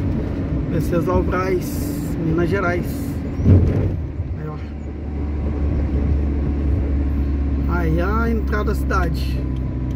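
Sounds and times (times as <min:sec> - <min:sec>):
road noise: 0:00.0 - 0:09.9
vehicle engine drone: 0:00.0 - 0:09.9.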